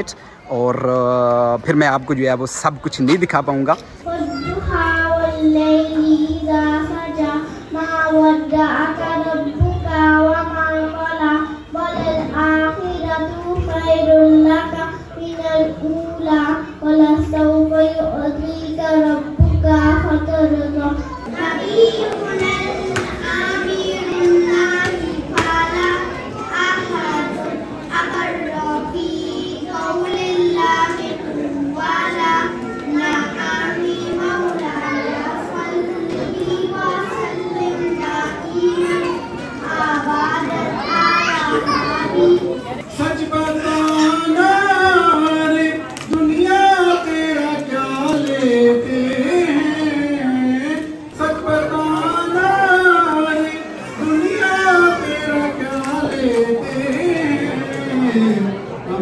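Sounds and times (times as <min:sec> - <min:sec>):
breaths between phrases: 0:00.0 - 0:00.5
adult voices: 0:00.0 - 0:59.0
children chattering and calling out: 0:00.0 - 0:59.0
girl singing into microphone: 0:03.9 - 0:58.4
child's high voice: 0:04.0 - 0:46.6.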